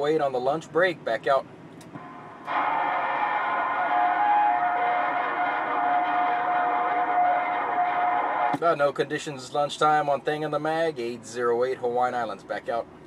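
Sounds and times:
steady whistle: 0:02.0 - 0:08.6.

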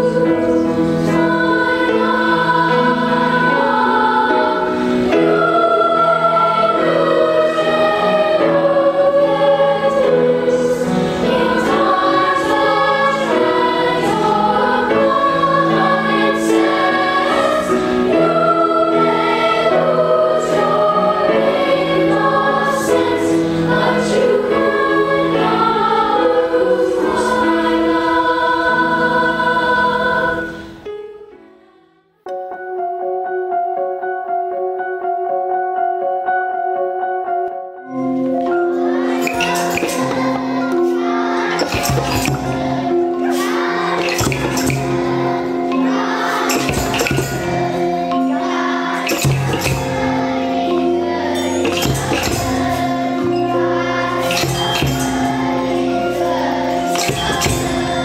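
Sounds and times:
choir singing: 0:00.0 - 0:32.0, 0:37.9 - 0:58.0.

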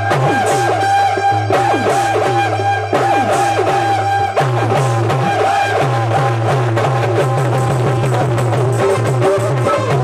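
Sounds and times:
repeating bass line: 0:00.0 - 0:10.0
steady dholak beat: 0:00.0 - 0:10.0.

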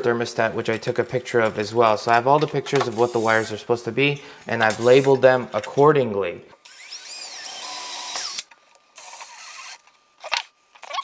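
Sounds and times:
cordless drill motor whine: 0:09.0 - 0:09.8.

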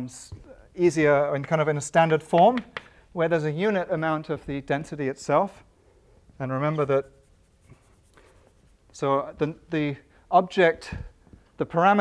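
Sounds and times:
chalk scratching on blackboard: 0:06.7 - 0:09.0.

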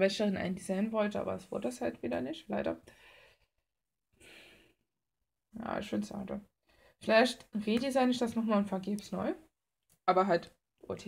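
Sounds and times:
faint breath: 0:02.9 - 0:03.5, 0:04.2 - 0:04.8, 0:06.6 - 0:07.0.

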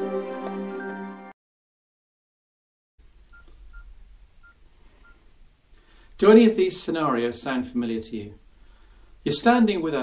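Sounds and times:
low room hum: 0:03.0 - 0:10.0
phone keypad beeps: 0:03.3 - 0:05.2.

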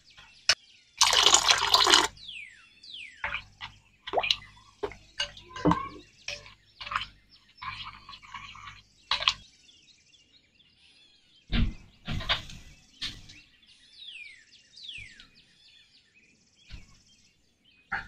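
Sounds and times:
spoon stirring wet batter: 0:01.0 - 0:02.2, 0:03.2 - 0:09.5
water pouring into glass bowl: 0:01.0 - 0:02.2, 0:03.2 - 0:09.4.

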